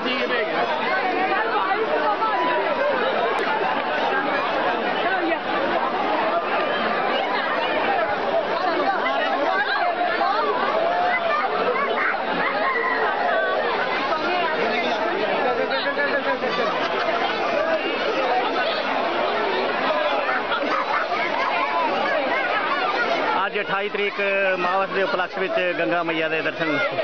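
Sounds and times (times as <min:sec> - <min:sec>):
crowd chatter: 0:00.0 - 0:27.0.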